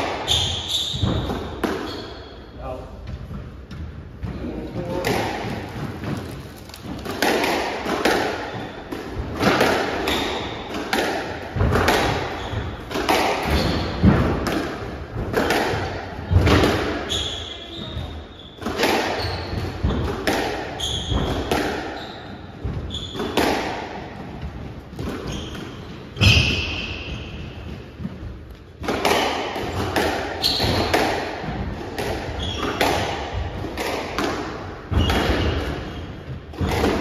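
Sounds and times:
shoes squeaking on wooden floor: 0:00.2 - 0:07.1, 0:10.0 - 0:10.7, 0:12.1 - 0:14.2, 0:17.0 - 0:23.4, 0:25.0 - 0:27.7, 0:29.7 - 0:30.9, 0:32.3 - 0:33.2
squash ball cracking off walls: 0:04.9 - 0:17.1, 0:28.8 - 0:37.0.

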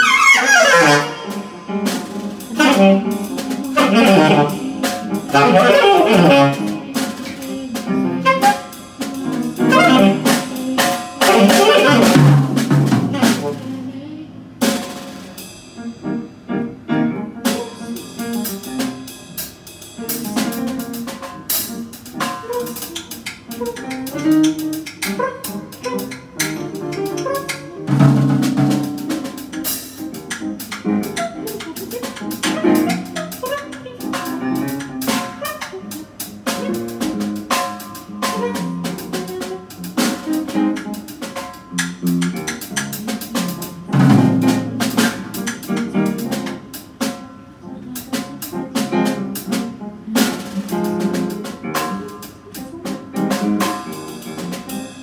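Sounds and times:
free jazz drum kit: 0:00.0 - 0:55.0
piano: 0:00.0 - 0:55.0.

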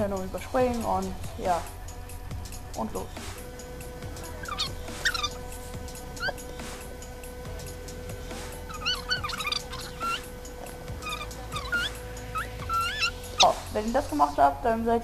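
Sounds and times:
faint steady hum: 0:00.0 - 0:15.0
animal whining calls: 0:04.2 - 0:06.8, 0:08.3 - 0:14.4.

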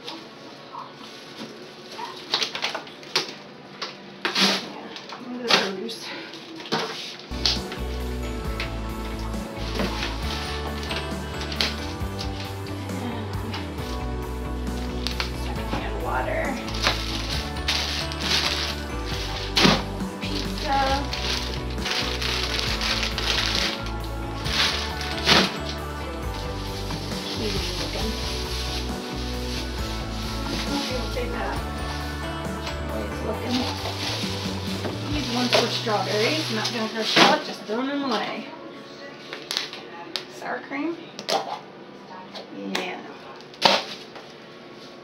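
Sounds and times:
plastic bags rustling: 0:00.0 - 0:03.5, 0:06.3 - 0:38.2
background music with bass line: 0:07.3 - 0:36.7.

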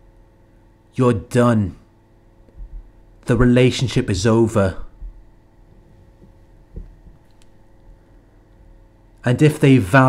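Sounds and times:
soft heartbeat-like thuds: 0:02.5 - 0:03.0, 0:04.9 - 0:07.3.

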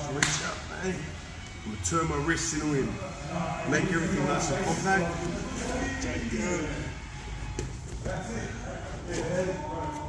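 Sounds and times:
man's voice: 0:00.0 - 0:07.0.

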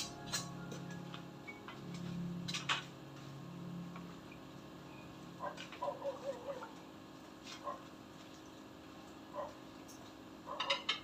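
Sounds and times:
aquarium air pump humming: 0:00.0 - 0:11.0.

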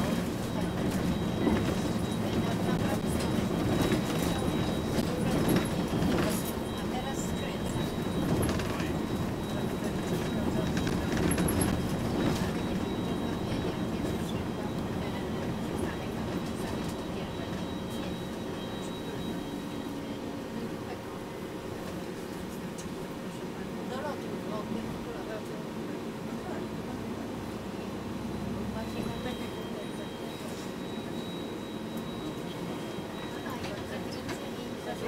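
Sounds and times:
bus engine and road rumble: 0:00.0 - 0:35.0.

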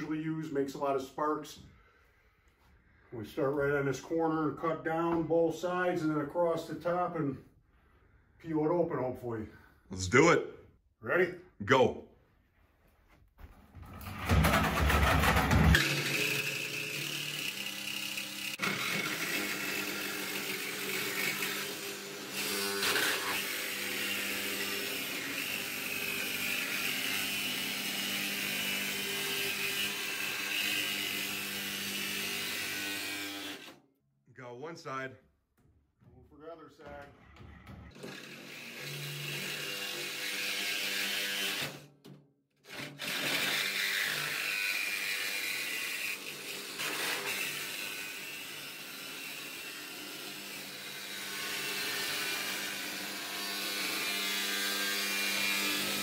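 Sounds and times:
reciprocating saw cutting steel: 0:14.7 - 0:33.8, 0:37.9 - 0:41.9, 0:42.6 - 0:56.0.

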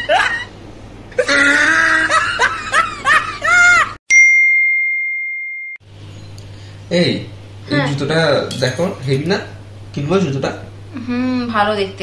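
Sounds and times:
laughter: 0:00.0 - 0:00.5, 0:01.2 - 0:04.0
bell-like ding chime: 0:04.1 - 0:05.8.

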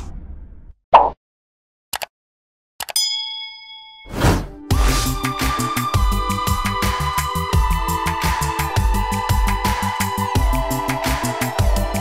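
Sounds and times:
notification bell ding: 0:03.0 - 0:04.5.

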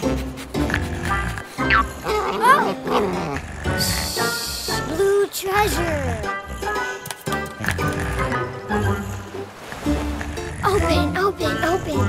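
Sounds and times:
background music: 0:00.0 - 0:12.0
cartoon puppy vocal: 0:00.8 - 0:07.0, 0:10.6 - 0:12.0.

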